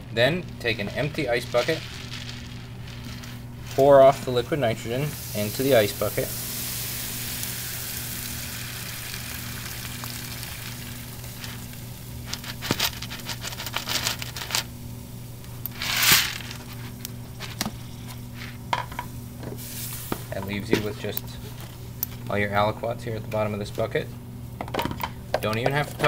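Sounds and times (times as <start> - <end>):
liquid nitrogen hissing: 0.0 - 22.8
steady low hum: 0.0 - 26.0.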